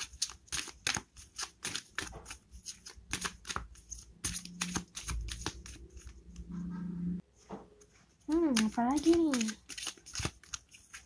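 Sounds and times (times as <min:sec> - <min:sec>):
cards being shuffled: 0:00.0 - 0:06.5, 0:07.9 - 0:11.0.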